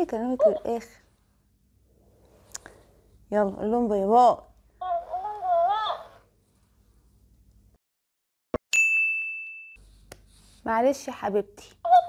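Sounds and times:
toy squeaky high-pitched voice: 4.8s - 6.2s.

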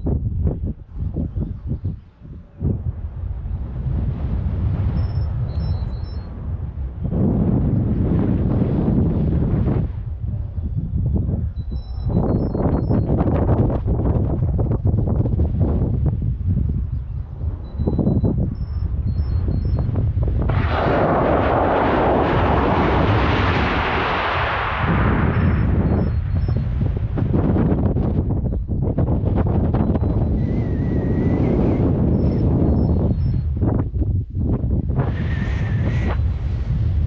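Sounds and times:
wind rushing over microphone: 0.0s - 37.0s.

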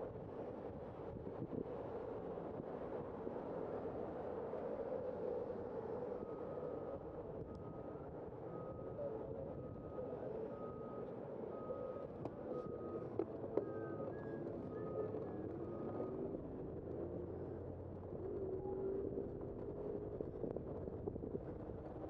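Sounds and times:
street traffic: 0.0s - 22.0s.

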